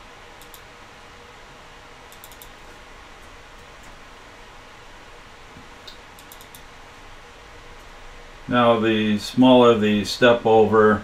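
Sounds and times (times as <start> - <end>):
steady background hiss: 0.0 - 11.0
mouse and keyboard clicks: 2.1 - 2.6, 5.9 - 6.7.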